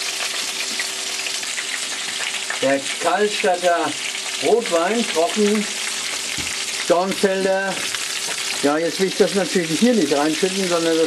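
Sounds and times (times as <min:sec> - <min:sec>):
meat sizzling in a pan: 0:00.0 - 0:11.0.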